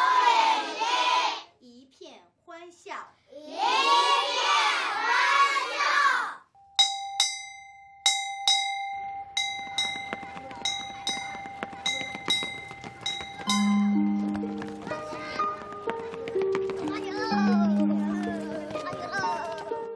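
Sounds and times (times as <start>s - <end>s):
school bell ringing: 6.6s - 15.9s, 17.0s - 18.9s
soft music: 8.6s - 19.9s.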